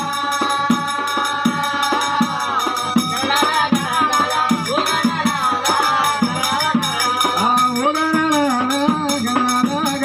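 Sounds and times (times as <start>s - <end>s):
double-headed drum beating: 0.0s - 10.0s
men singing devotional song: 0.0s - 10.0s.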